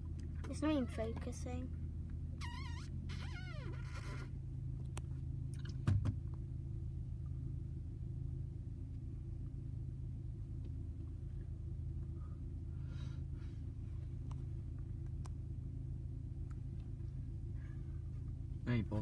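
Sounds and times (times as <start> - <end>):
car engine idling: 0.0 - 19.0.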